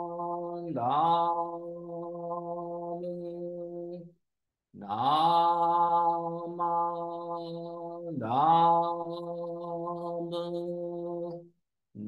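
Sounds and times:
man chanting: 0.0s - 4.1s, 4.8s - 11.4s.

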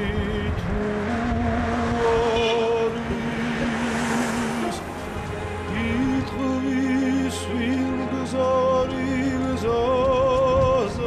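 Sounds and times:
slow music of long held notes: 0.0s - 11.0s
steady low rumble: 0.0s - 11.0s.

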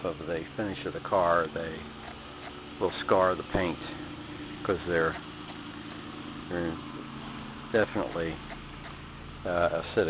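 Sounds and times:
low mechanical hum: 0.0s - 10.0s
man speaking: 2.8s - 4.0s, 4.6s - 5.2s, 6.5s - 6.8s, 7.8s - 8.4s, 9.5s - 10.0s.

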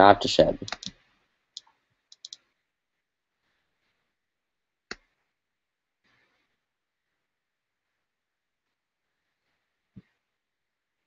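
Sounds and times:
computer mouse clicks: 0.6s - 1.0s, 1.6s - 2.4s.

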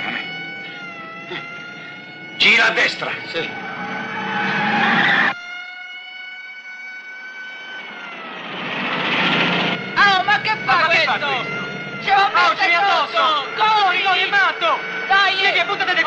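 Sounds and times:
steady high whine: 0.0s - 16.0s.

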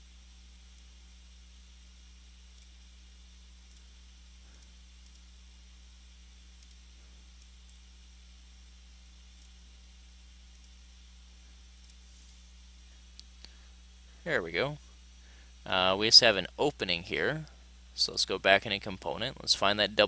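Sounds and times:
low electrical hum and hiss: 0.0s - 20.0s
computer mouse click: 3.6s - 3.9s, 4.5s - 5.3s, 6.6s - 6.8s, 10.5s - 10.8s.

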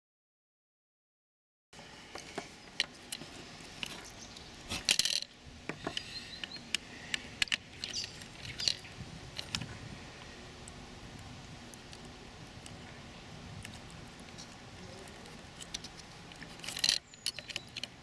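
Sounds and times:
rattle of clicks: 2.4s - 9.7s, 15.2s - 18.0s
screwdriver clicks and scrapes: 13.6s - 18.0s.

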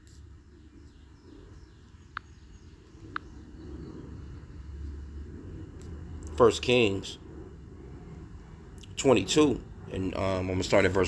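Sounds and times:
low rumble: 2.3s - 11.0s.

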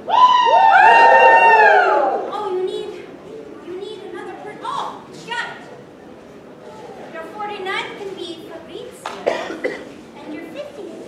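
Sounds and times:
people shrieking: 0.0s - 2.3s.

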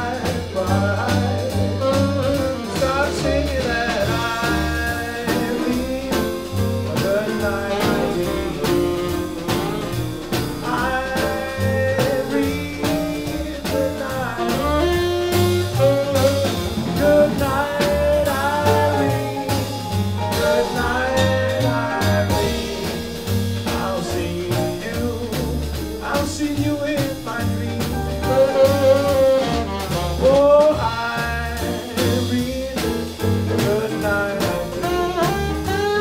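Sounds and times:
double bass walking line: 0.0s - 36.0s
drums with cymbals: 0.0s - 36.0s
piano: 0.0s - 36.0s
lead melody line: 1.1s - 25.7s.

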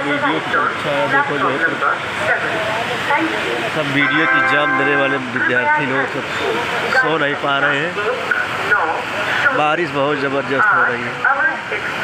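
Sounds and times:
heavy rain hissing: 0.0s - 12.0s
people talking: 0.0s - 12.0s.

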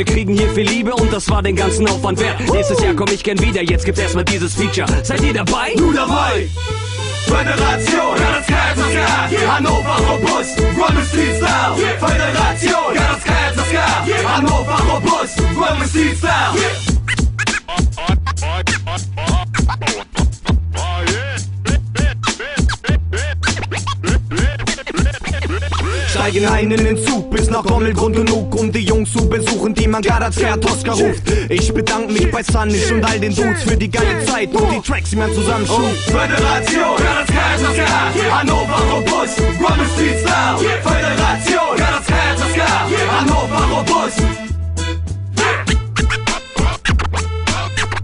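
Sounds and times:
hip hop drums: 0.0s - 6.5s, 7.2s - 44.5s, 45.4s - 48.0s
deep bass line: 0.0s - 47.9s
turntable record scratching: 2.4s - 3.5s, 17.1s - 26.3s, 45.4s - 48.0s.

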